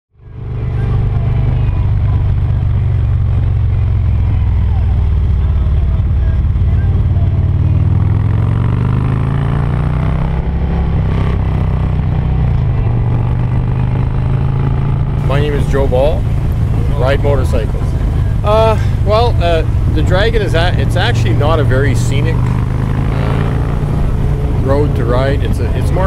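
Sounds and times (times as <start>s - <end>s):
motorcycle engine running: 0.2s - 26.0s.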